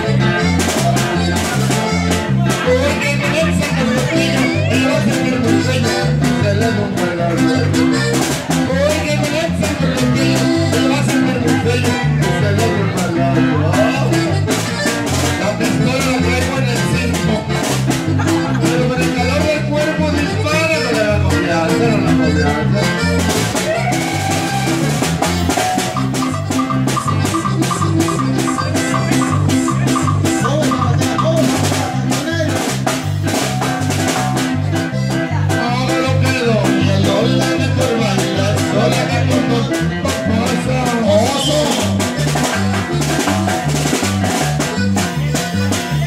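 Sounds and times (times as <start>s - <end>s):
band playing polka: 0.0s - 46.0s
drum kit: 0.0s - 46.0s
electric bass: 0.0s - 46.0s.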